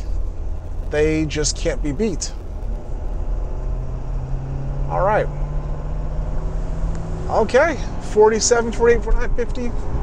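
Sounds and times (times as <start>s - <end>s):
diesel engine hum: 0.0s - 10.0s
road and tyre noise: 0.0s - 10.0s.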